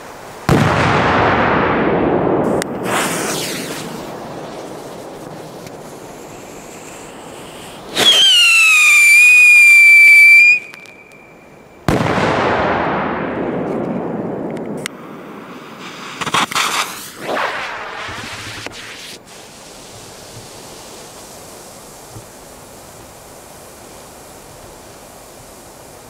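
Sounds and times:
firecracker bang with echo: 0.5 - 5.5, 11.9 - 14.8
firecracker whistle: 2.5 - 12.0.

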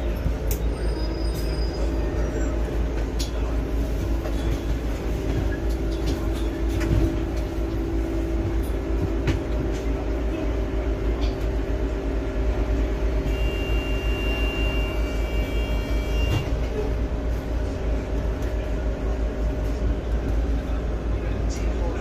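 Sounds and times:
bus drivetrain rumble and hum: 0.0 - 22.0.

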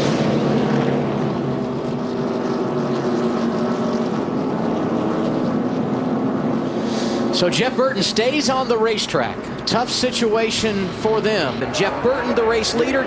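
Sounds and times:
race car engines passing: 0.0 - 13.0.

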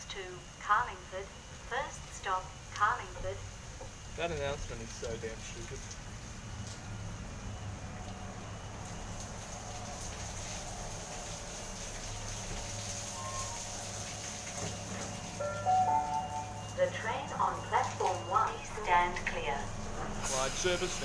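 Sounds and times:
recorded platform announcement: 0.0 - 3.5, 15.4 - 21.0
rain hissing: 1.5 - 21.0
electric train slowing to a stop: 9.8 - 21.0
electronic chime tones: 15.3 - 18.4.

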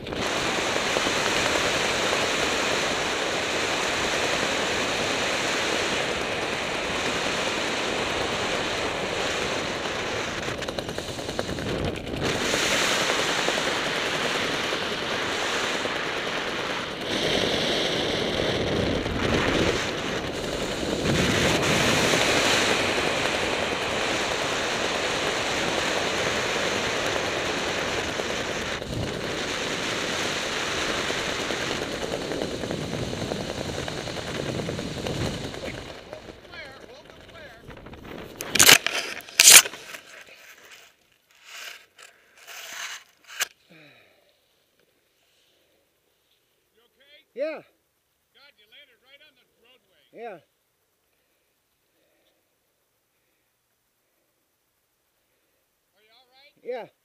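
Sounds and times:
wind buffeting microphone: 6.0 - 38.6.

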